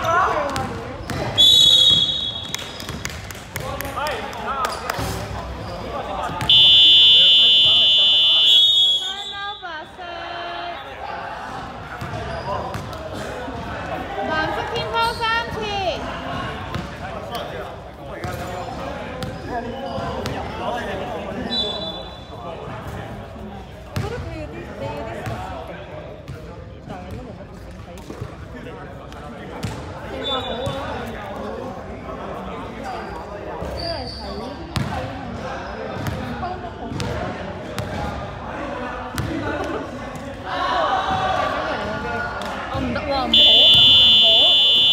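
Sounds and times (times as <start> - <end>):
indistinct chatter in a hall: 0.0 - 44.9.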